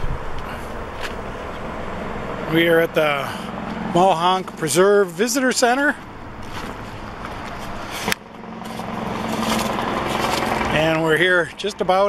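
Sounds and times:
vehicle engine and tyres approaching: 0.0s - 12.0s.

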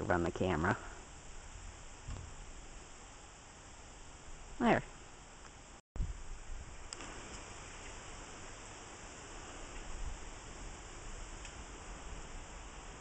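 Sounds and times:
even hiss: 0.7s - 13.0s
faint ticks: 11.4s - 11.6s.

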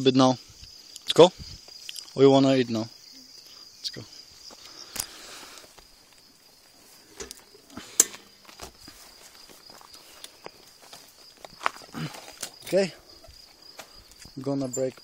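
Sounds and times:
crickets chirring: 0.0s - 15.0s.

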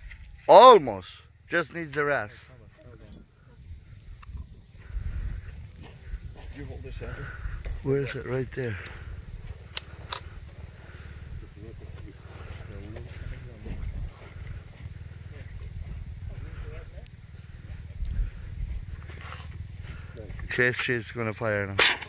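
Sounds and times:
steady low rumble: 2.4s - 22.0s.

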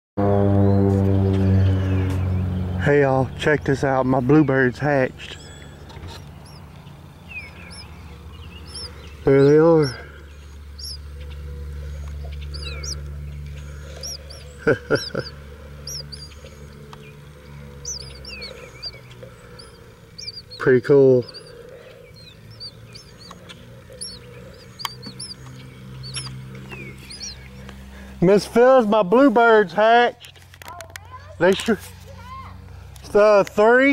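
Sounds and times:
faint low rumble: 0.2s - 28.4s
low steady hum: 0.2s - 31.4s
small birds chirping: 0.6s - 33.9s.

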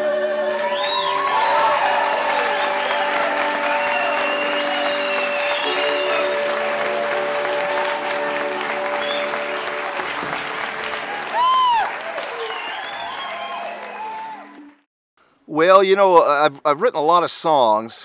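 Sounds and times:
crowd whooping: 0.5s - 14.8s
audience applauding: 0.5s - 14.9s
held accordion chord: 2.4s - 11.1s.

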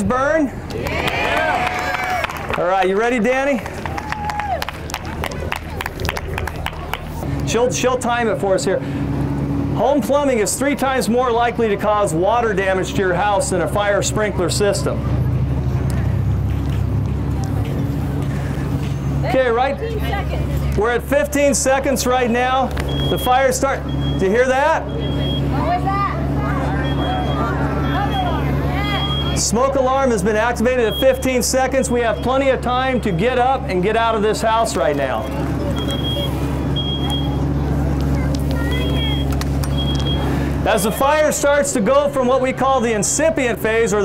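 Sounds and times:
steady low hum: 0.0s - 44.0s
smoke alarm beeping: 22.8s - 25.6s, 26.8s - 29.4s, 30.7s - 32.6s, 35.8s - 37.4s, 38.7s - 40.3s.

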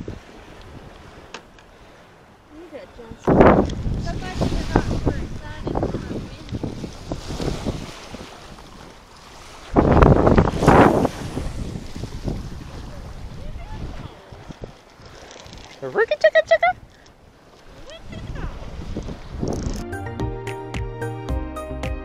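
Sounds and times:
choppy water at shore: 0.0s - 19.8s
wind buffeting microphone: 0.0s - 19.8s.

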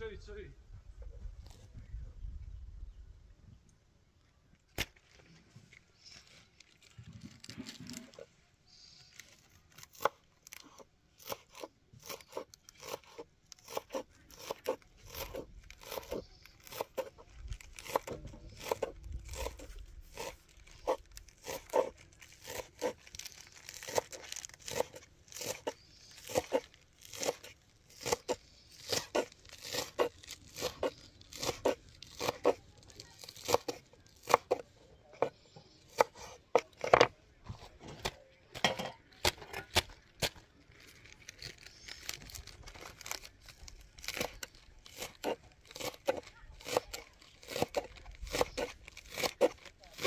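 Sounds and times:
knife shredding cabbage: 9.2s - 34.6s, 39.2s - 50.0s.

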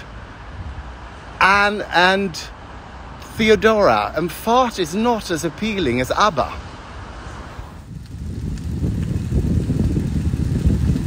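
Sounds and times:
wind buffeting microphone: 0.0s - 1.4s, 5.6s - 11.0s.

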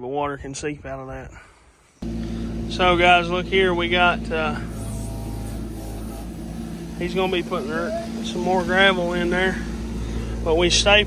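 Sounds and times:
excavator diesel engine running: 2.0s - 11.0s.

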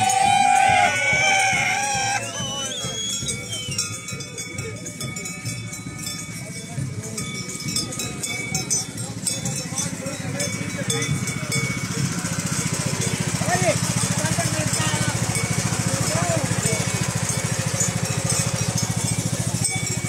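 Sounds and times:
lawn mower engine running: 0.0s - 2.5s, 9.8s - 20.0s.

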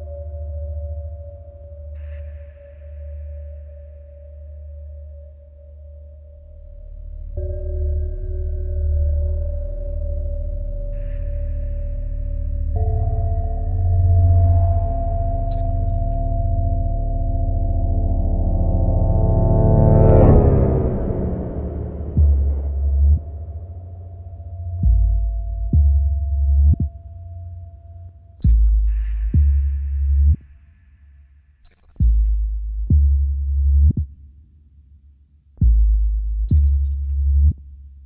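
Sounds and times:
ambient electronic music: 0.0s - 34.5s
deep sub-bass throb: 10.7s - 30.6s, 32.0s - 34.3s, 35.6s - 38.0s.

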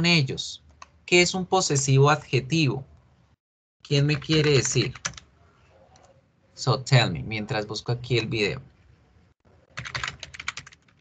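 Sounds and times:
typing on computer keyboard: 4.1s - 5.3s, 9.7s - 11.0s.

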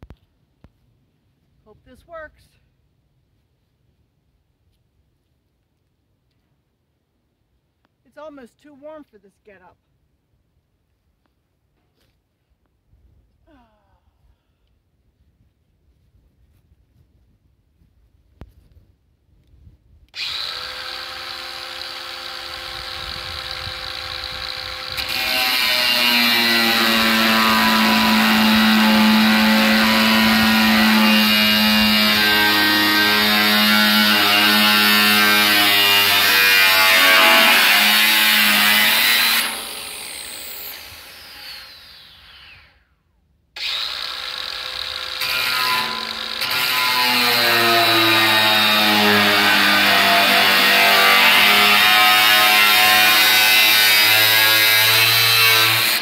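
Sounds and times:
angle grinder cutting steel: 20.2s - 42.8s, 43.6s - 56.0s.

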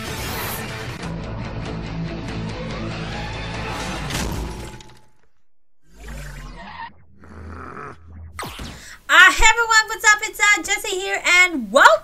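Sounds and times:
loud shattering crash: 3.7s - 5.2s
low rumble: 5.4s - 8.4s.

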